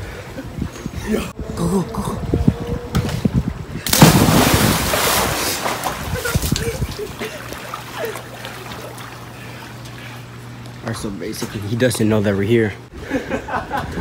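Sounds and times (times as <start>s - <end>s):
wind buffeting microphone: 0.0s - 7.4s
loud splash into pool: 3.9s - 6.5s.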